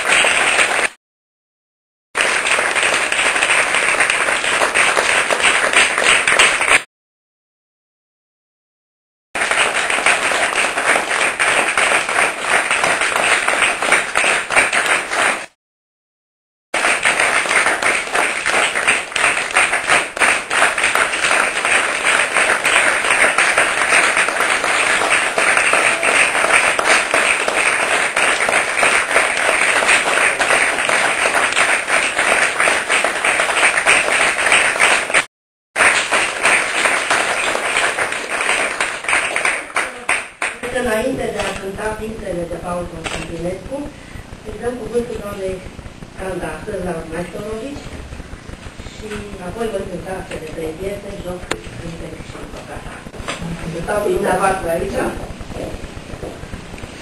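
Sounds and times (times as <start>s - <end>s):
audience applauding: 0.0s - 1.0s, 2.2s - 6.9s, 9.4s - 15.6s, 16.8s - 41.6s.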